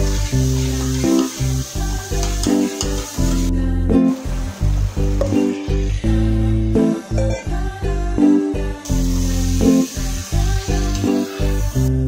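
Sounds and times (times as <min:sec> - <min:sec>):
masala sizzling in a pot: 0:00.0 - 0:07.6, 0:08.8 - 0:12.0
background music: 0:00.0 - 0:12.0.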